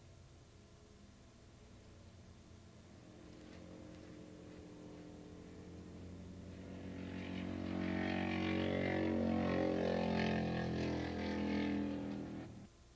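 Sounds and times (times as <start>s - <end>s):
racing motorcycle engines revving: 2.9s - 12.7s.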